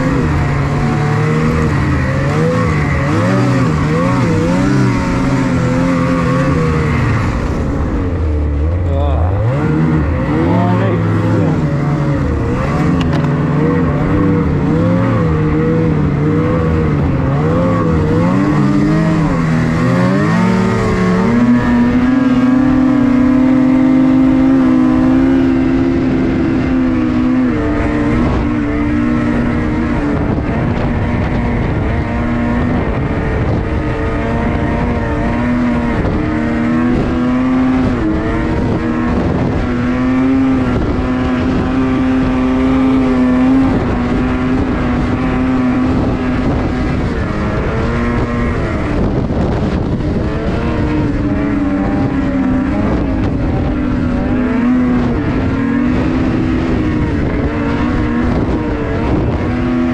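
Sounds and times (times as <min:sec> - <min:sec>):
snowmobile engine running hard: 0:00.0 - 0:59.9.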